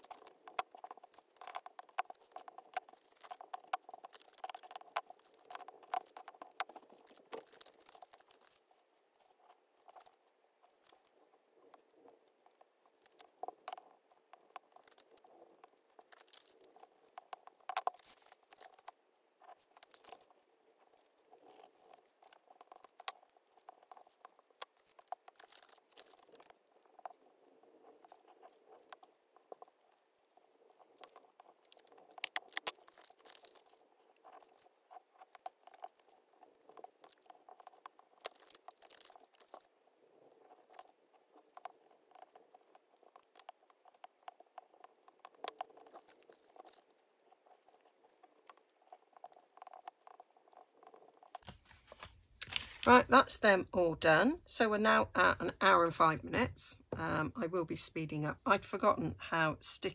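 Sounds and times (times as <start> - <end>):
paper rustling and scratching: 0.0 - 53.0.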